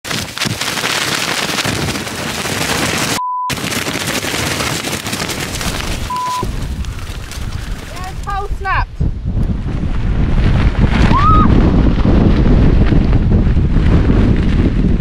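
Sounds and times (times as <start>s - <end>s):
censor bleeps: 3.2s - 3.5s, 6.1s - 6.5s
wind buffeting microphone: 5.2s - 15.0s.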